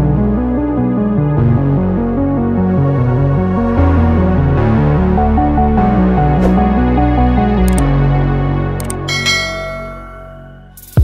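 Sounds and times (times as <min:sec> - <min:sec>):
bell-like notification chime: 0:09.1 - 0:10.8.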